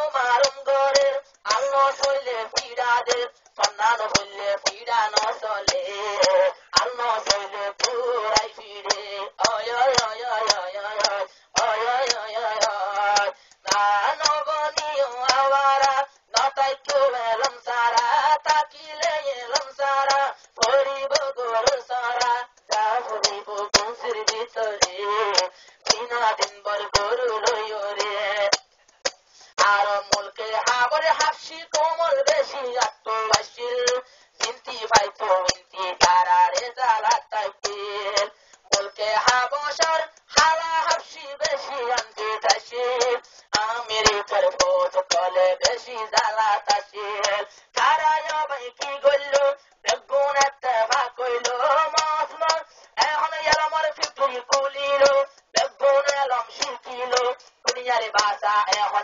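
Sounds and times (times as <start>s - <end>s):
man singing with processed voice: 0.0s - 59.0s
sharp percussive clicks: 0.0s - 59.0s.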